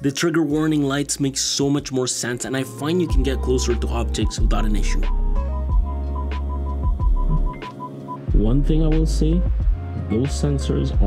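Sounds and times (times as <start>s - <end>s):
parking sensor beeping: 5.7s - 8.2s.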